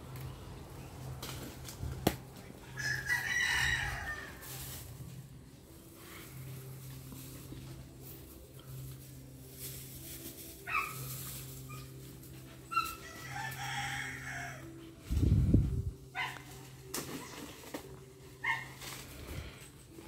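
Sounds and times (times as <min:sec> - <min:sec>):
rooster crowing: 0:02.7 - 0:04.5, 0:13.1 - 0:14.7.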